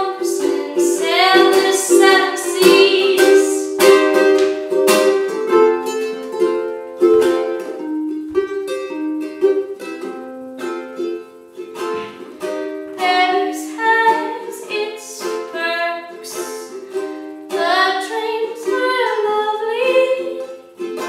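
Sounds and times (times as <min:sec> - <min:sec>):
woman singing: 0:00.0 - 0:04.0, 0:13.0 - 0:16.8, 0:17.5 - 0:21.0
ukulele strummed in chords: 0:00.0 - 0:21.0.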